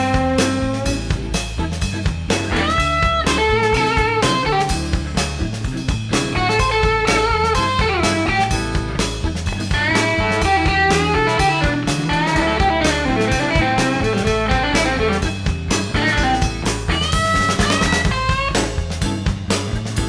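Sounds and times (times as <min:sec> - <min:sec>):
bass guitar: 0:00.0 - 0:20.0
drums: 0:00.0 - 0:20.0
lead electric guitar with bent notes: 0:00.0 - 0:20.0.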